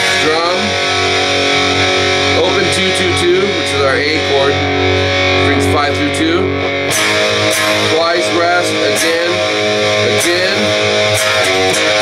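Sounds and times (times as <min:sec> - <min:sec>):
distorted electric guitar strumming: 0:00.0 - 0:12.0
recorded rock song with singing: 0:00.0 - 0:12.0.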